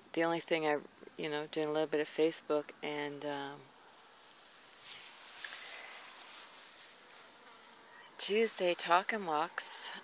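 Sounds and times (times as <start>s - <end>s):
high-pitched insect buzz: 4.1s - 9.3s.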